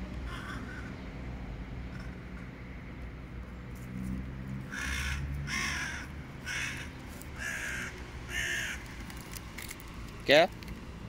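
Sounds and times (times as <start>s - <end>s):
bird harsh calls: 4.7s - 9.0s.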